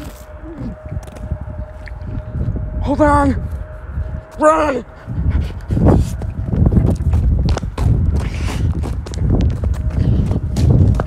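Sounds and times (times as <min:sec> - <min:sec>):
hurried footsteps: 0:03.4 - 0:11.0.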